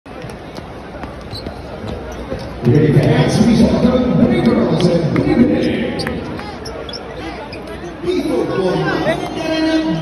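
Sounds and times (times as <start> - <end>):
murmur of crowd voices: 0.1 - 10.0.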